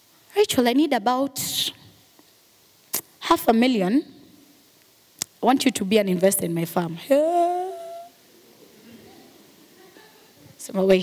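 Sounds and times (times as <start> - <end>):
woman's hum-like vocal sound: 7.2 - 8.2.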